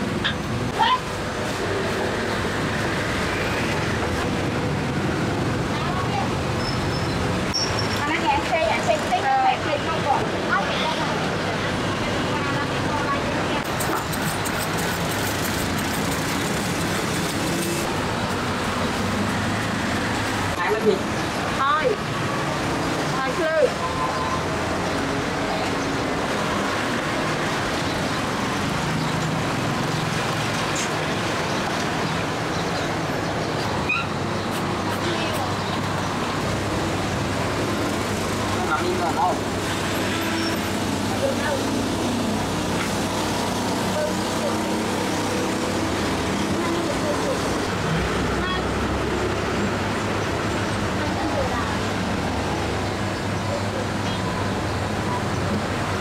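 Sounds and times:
traffic noise: 0.0s - 56.0s.

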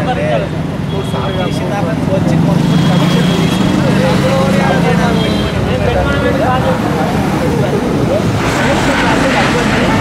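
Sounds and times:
people talking at once: 0.0s - 10.0s
road traffic engine hum: 0.0s - 10.0s.

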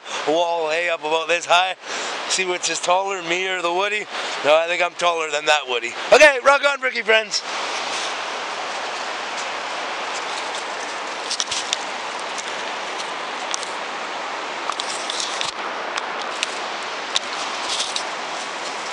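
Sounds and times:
river water rushing: 0.0s - 18.9s
footsteps crunching on shale: 5.8s - 18.9s.

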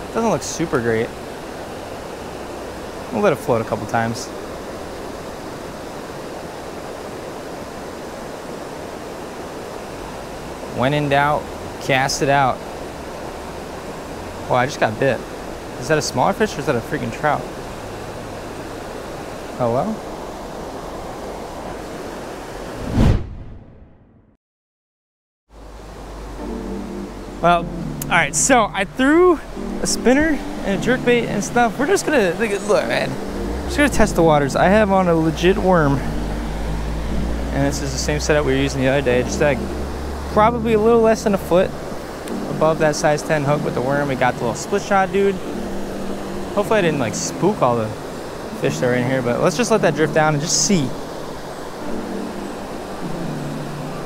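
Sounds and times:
creek water rushing over rocks: 0.0s - 22.8s, 25.6s - 54.0s
soft background music: 9.8s - 20.2s, 25.6s - 54.0s
rushing noise with low rumble: 22.7s - 23.9s, 25.6s - 48.6s.

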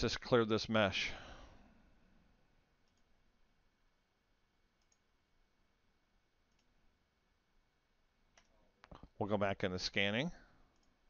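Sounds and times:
computer mouse clicks: 2.8s - 3.1s, 4.8s - 5.1s, 6.5s - 6.8s, 8.3s - 9.1s, 10.7s - 11.0s.

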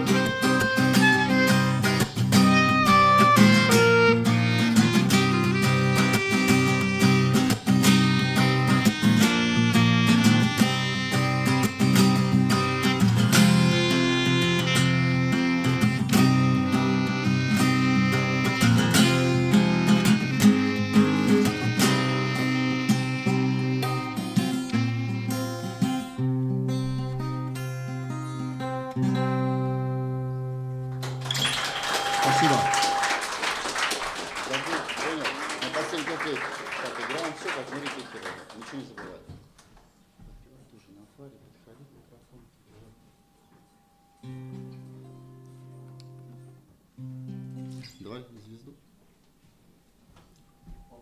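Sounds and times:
clarinet melody: 0.0s - 30.7s, 31.4s - 33.9s
acoustic guitar strumming: 0.0s - 33.3s, 43.0s - 48.1s
voices: 31.7s - 33.4s, 34.2s - 39.4s.

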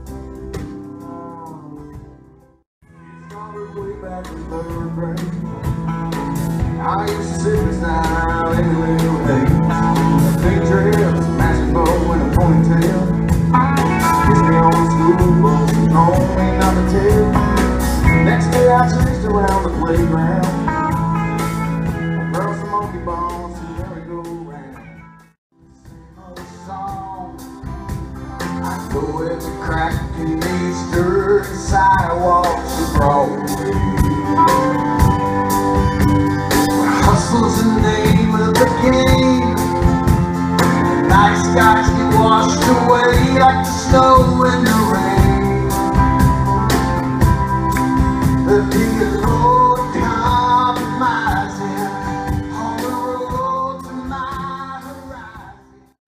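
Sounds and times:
country band playing: 0.0s - 56.0s
man singing into microphone: 1.0s - 2.0s, 3.0s - 5.8s, 6.6s - 13.4s, 14.0s - 20.7s, 22.2s - 24.9s, 25.8s - 27.5s, 28.5s - 34.8s, 36.7s - 40.0s, 40.9s - 46.0s, 48.3s - 56.0s.

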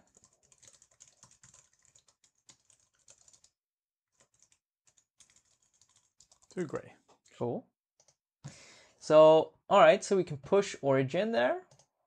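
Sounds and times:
typing on computer keyboard: 0.0s - 6.8s, 11.7s - 11.9s.

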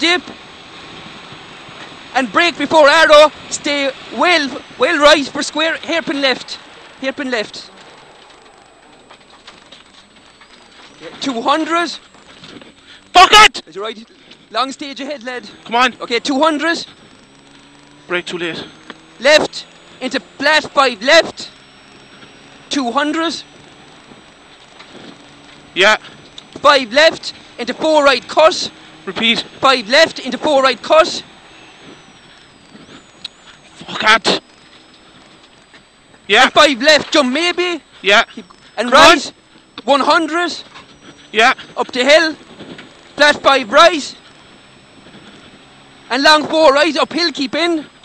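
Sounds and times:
tyre and road noise: 0.0s - 48.0s
stones ticking against car body: 6.7s - 13.0s.

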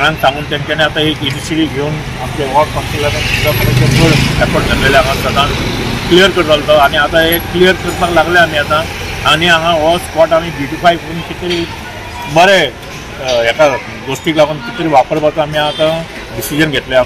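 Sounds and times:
man talking: 0.0s - 17.0s
street noise: 0.0s - 17.0s.

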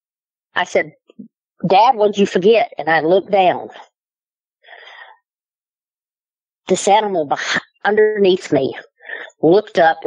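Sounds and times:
woman's intake of breath: 4.6s - 5.2s.

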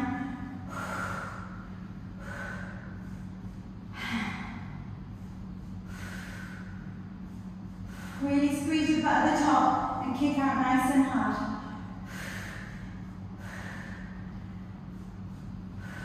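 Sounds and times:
woman breathing hard: 0.0s - 10.0s, 11.4s - 16.0s
steady low hum: 0.0s - 16.0s.

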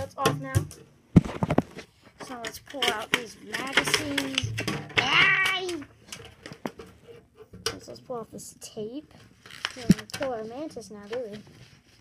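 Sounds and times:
plastic enclosure handling noise: 0.0s - 8.0s, 9.5s - 12.0s.

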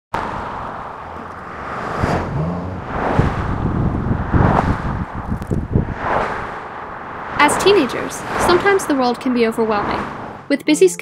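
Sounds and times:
car passing: 0.2s - 10.5s
low outdoor rumble: 0.2s - 10.5s.

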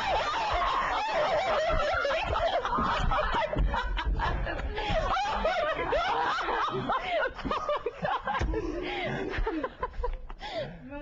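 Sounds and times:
man and woman laughing: 0.0s - 10.4s.

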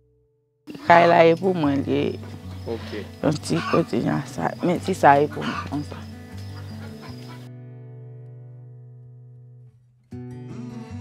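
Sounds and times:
outdoor background noise: 0.7s - 7.5s.

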